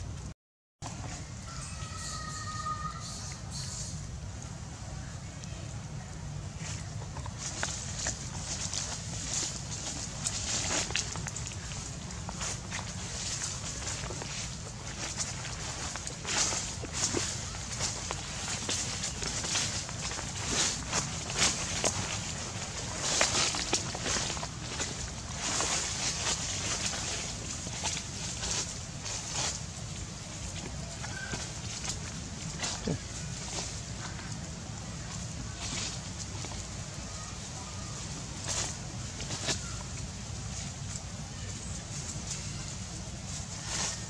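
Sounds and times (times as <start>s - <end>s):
monkeys rustling on leaf litter: 6.5s - 44.0s.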